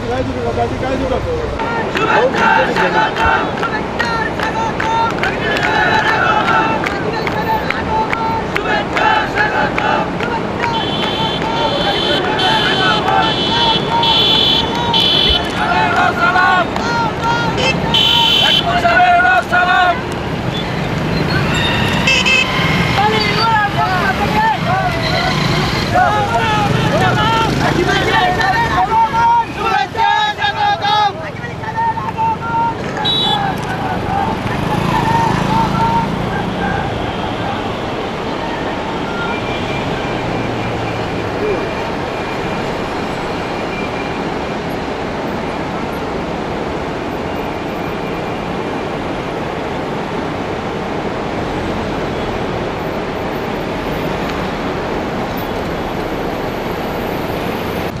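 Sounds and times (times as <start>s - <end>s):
people talking: 0.0s - 20.0s, 22.8s - 39.5s, 41.3s - 41.8s.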